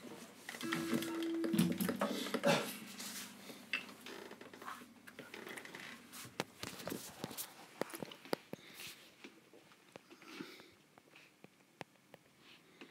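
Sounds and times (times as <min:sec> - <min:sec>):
acoustic guitar notes ringing: 0:00.6 - 0:03.7.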